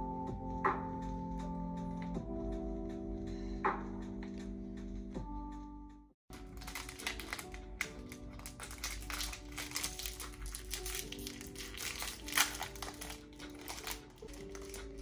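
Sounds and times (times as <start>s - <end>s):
soft background music: 0.0s - 15.0s
foil snack packet crinkling: 6.3s - 15.0s.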